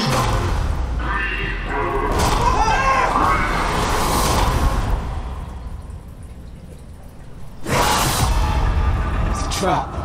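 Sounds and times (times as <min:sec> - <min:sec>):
loud cinematic hit: 0:07.9 - 0:09.8.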